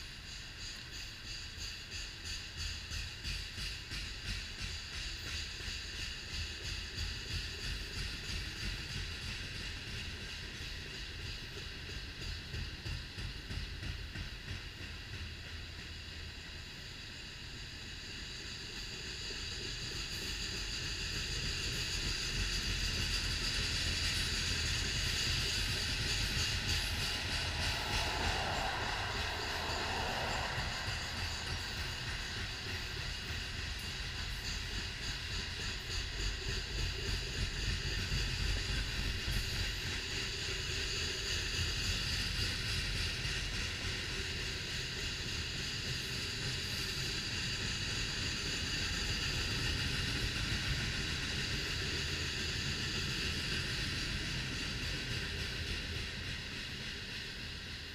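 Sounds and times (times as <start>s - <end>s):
freight train rolling past: 0.0s - 57.9s
high ringing of wheels on rail: 0.0s - 57.9s.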